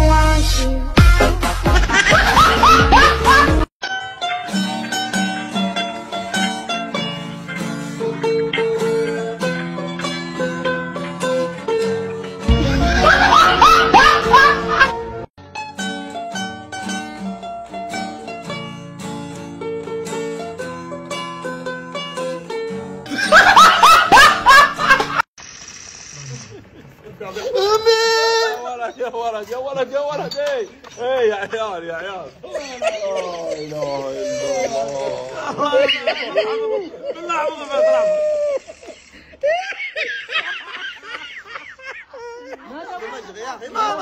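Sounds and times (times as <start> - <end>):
men laughing hard: 1.6 - 3.7, 8.5 - 10.0, 12.5 - 15.3, 23.1 - 25.3, 31.3 - 44.0
person laughing in high whoops: 32.5 - 40.0.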